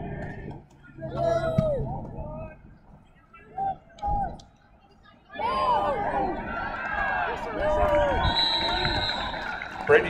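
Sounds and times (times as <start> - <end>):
crowd shouting and cheering: 0.0 - 2.6, 3.4 - 10.0.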